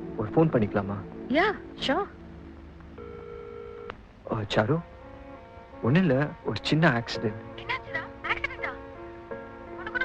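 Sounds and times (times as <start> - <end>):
telephone ringback tone: 3.0 - 3.9.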